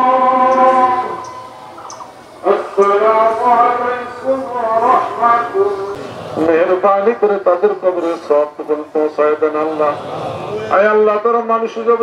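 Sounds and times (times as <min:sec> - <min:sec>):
man chanting a long note: 0:00.0 - 0:01.7.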